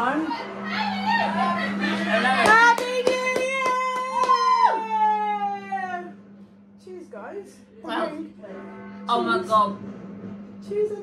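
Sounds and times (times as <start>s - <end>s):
hand clap: 2.4s - 4.7s
women cheering woo: 3.4s - 6.1s.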